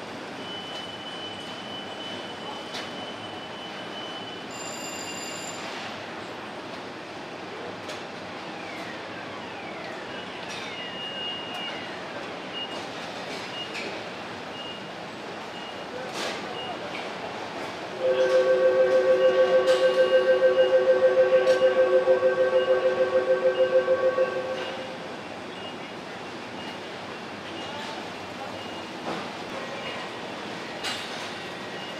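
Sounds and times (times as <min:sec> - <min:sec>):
machinery din: 0:18.0 - 0:25.0
pulsing warning buzzer: 0:18.0 - 0:25.0
short high beep: 0:18.0 - 0:25.0.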